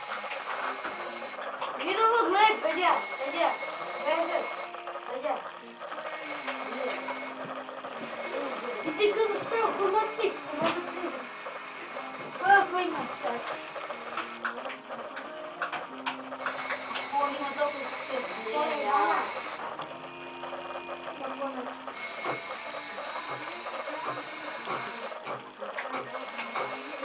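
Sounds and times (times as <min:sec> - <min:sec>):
indistinct voices: 0:00.1 - 0:27.0
hum of held tones: 0:02.0 - 0:27.0.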